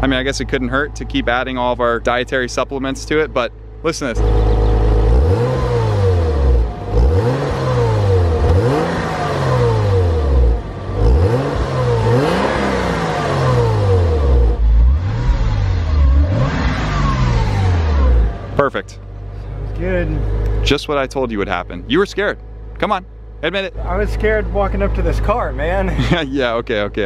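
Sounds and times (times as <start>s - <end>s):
car engine idling: 0.0s - 27.0s
car engine revving: 0.0s - 27.0s.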